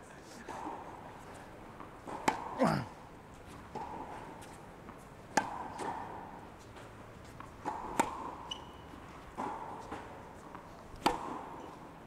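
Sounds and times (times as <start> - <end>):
tennis racket hitting ball: 1.8 - 2.6, 3.7 - 11.8.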